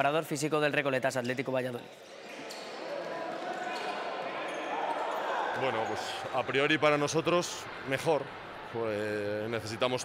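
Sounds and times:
players' voices in echoing hall: 0:00.0 - 0:10.0.

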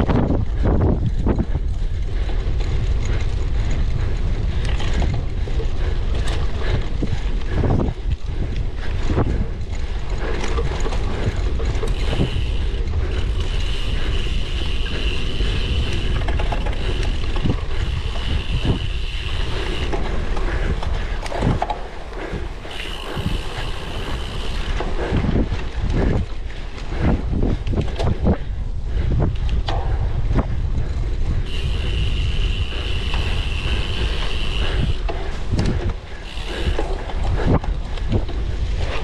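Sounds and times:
bicycle rattling over bumpy ground: 0:00.0 - 0:39.0
wind buffeting microphone: 0:00.0 - 0:39.0.

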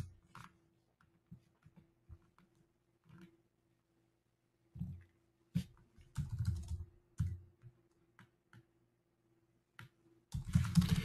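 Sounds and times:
typing on computer keyboard: 0:06.0 - 0:08.7, 0:10.3 - 0:11.0.

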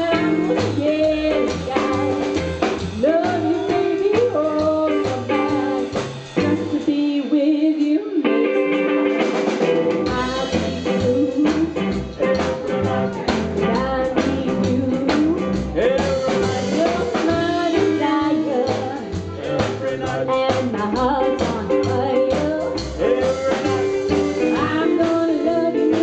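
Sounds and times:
upright double bass: 0:00.0 - 0:07.0, 0:09.8 - 0:26.0
woman singing: 0:00.0 - 0:08.9, 0:10.0 - 0:26.0
drums: 0:00.0 - 0:26.0
electric guitar: 0:00.0 - 0:26.0.

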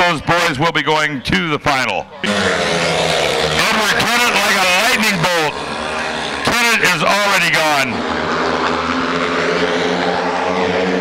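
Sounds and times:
motorcycle engines at full throttle: 0:02.1 - 0:11.0.

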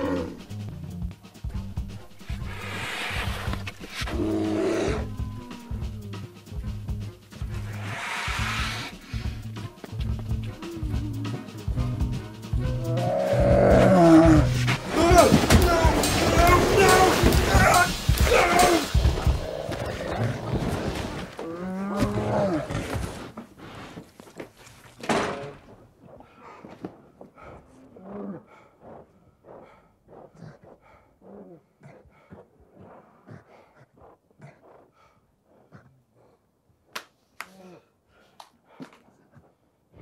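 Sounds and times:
bear roaring: 0:00.0 - 0:00.6, 0:01.9 - 0:06.2, 0:12.6 - 0:23.0.

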